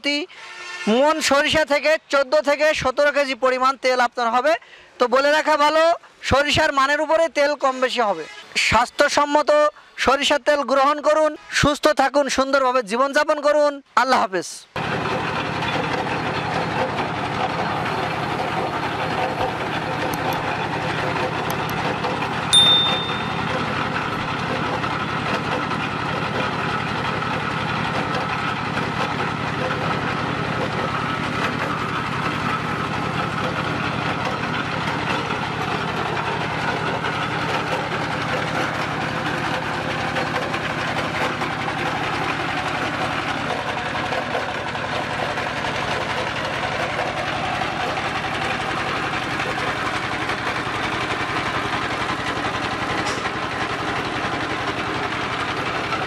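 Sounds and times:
diesel engine running: 14.8s - 56.0s
oil press machinery din: 14.8s - 56.0s.

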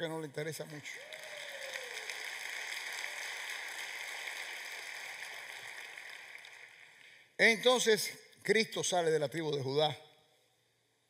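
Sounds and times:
crowd applauding in a hall: 0.0s - 7.9s.

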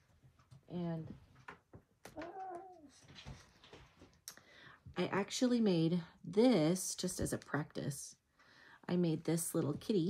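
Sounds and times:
cat meowing: 2.2s - 3.0s.

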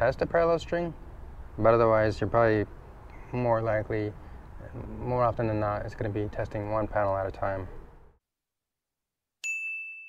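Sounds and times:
bright ding: 9.4s - 10.0s.

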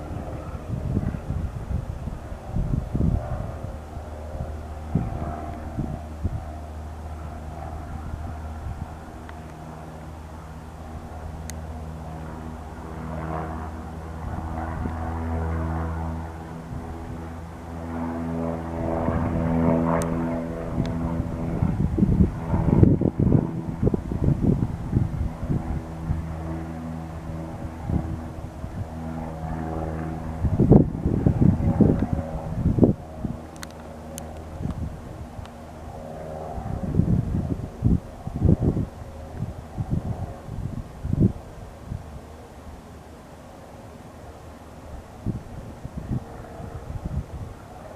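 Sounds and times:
propeller plane engine droning: 0.0s - 47.9s
wind rumbling on microphone: 0.0s - 47.9s.

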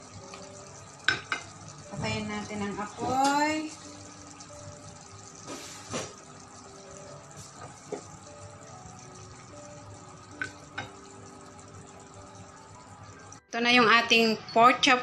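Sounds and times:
food simmering in a frying pan: 0.0s - 14.9s
faint background music: 0.0s - 15.0s.

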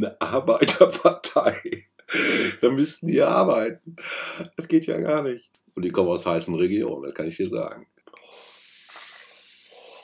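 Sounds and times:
aerosol spray hissing: 8.3s - 10.0s.

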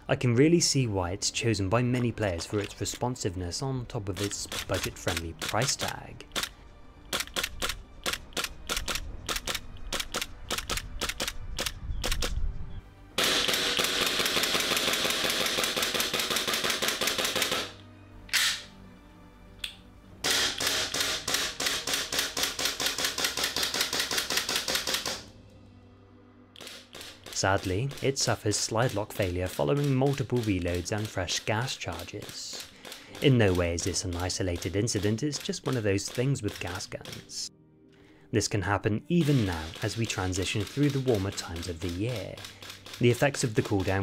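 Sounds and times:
airsoft pistol shots: 13.2s - 17.8s, 20.2s - 25.3s
pistol slide snapping back: 13.4s - 18.7s, 26.6s - 27.4s.

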